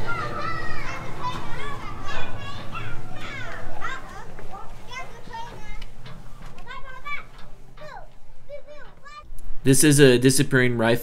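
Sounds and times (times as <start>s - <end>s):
children chattering and calling out: 0.0s - 9.4s.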